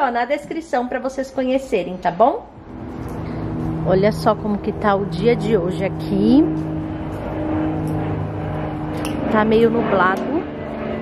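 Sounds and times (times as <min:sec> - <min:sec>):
airplane engine drone: 0:00.4 - 0:11.0.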